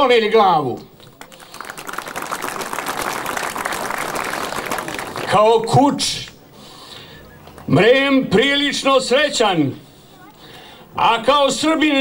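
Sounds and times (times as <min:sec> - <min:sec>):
crowd applauding: 0:01.0 - 0:05.9, 0:07.0 - 0:07.8.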